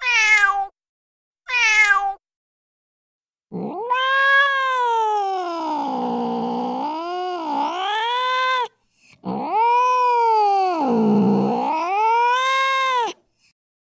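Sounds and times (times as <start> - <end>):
cat yowling: 0.0 - 0.7, 1.5 - 2.2, 3.5 - 13.2.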